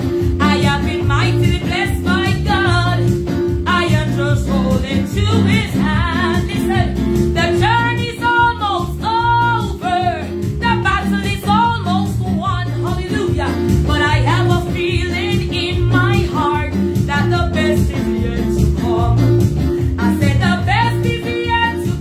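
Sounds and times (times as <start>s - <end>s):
electronic keyboard chords: 0.0s - 22.0s
woman singing gospel song: 0.4s - 22.0s.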